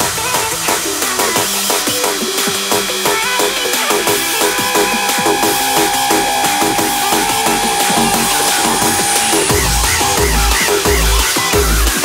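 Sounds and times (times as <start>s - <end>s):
hard dance music: 0.0s - 12.0s
heavy bass kick: 1.4s - 12.0s
held high synth tone: 1.8s - 11.4s.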